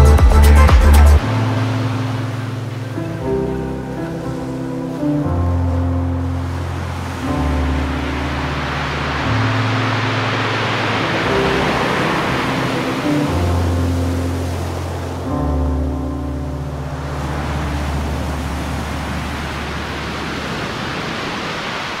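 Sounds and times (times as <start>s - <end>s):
music of low held notes: 0.0s - 20.0s
ocean surf on a beach: 1.2s - 22.0s.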